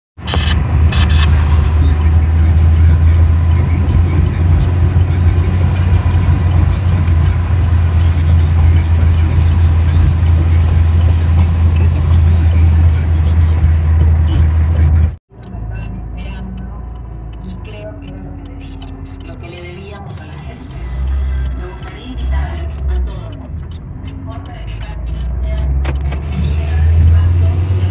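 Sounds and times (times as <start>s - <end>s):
car cabin road and engine rumble: 0.2s - 27.9s.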